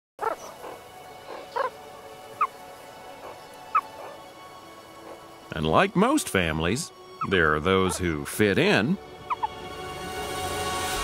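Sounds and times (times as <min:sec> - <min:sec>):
meerkats giving high calls: 0:00.2 - 0:01.8, 0:07.2 - 0:08.0, 0:09.2 - 0:09.6
soft background music: 0:00.2 - 0:11.0.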